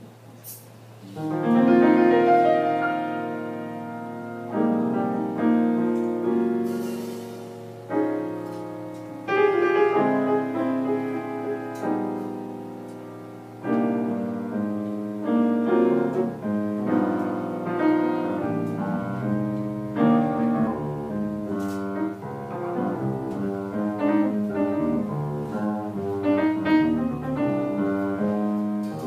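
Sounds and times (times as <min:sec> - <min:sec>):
jazz piano: 0:00.0 - 0:29.0
electric bass: 0:16.0 - 0:29.0.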